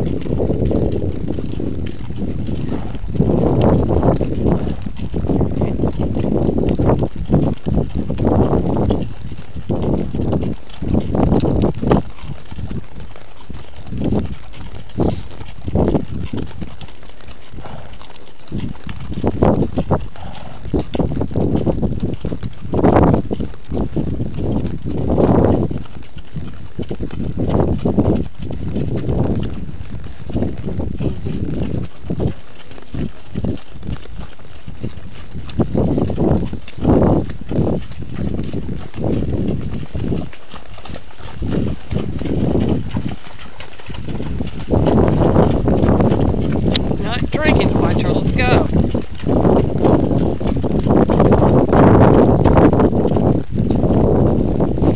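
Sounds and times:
hooves clip-clopping on gravel: 0:00.0 - 0:54.9.

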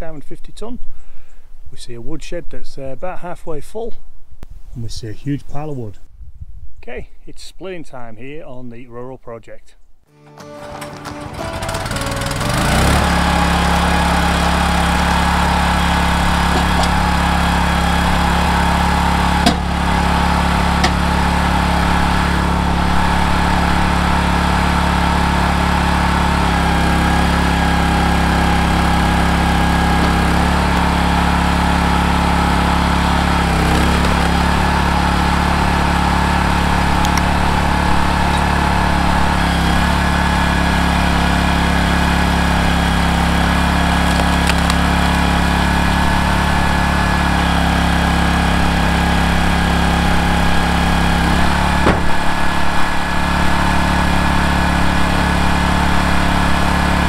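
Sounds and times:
log splitter engine running: 0:10.2 - 0:57.0.

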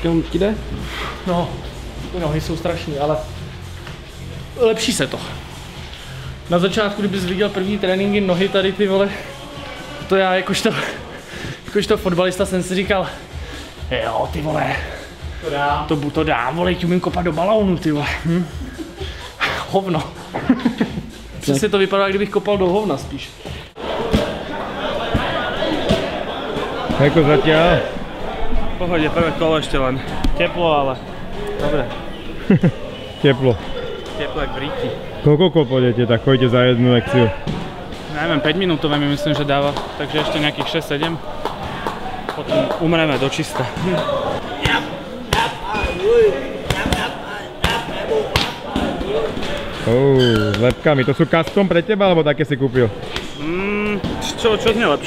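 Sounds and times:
indistinct background voices: 0:00.0 - 0:17.0.

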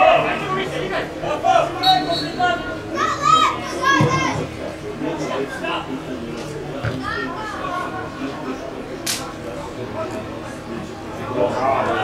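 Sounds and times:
voices calling and shouting: 0:00.0 - 0:12.0.

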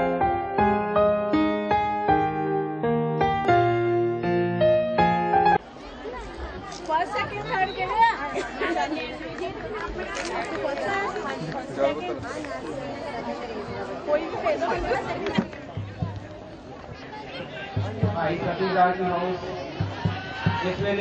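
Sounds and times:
chatter of many people: 0:05.4 - 0:21.0.

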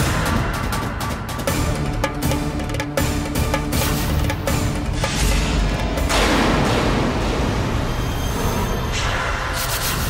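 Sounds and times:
background music: 0:00.0 - 0:10.0
dramatic boom hit: 0:03.7 - 0:08.3.

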